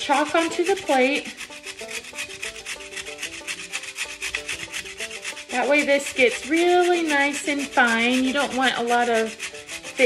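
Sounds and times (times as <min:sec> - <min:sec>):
chalk scraping on metal grater: 0:00.0 - 0:10.0.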